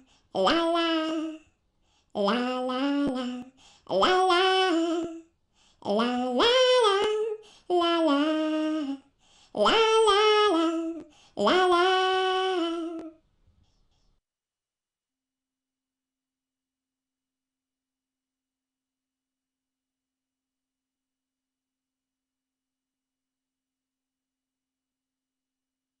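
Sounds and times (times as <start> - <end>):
person singing la: 0.0 - 1.5, 2.1 - 13.2.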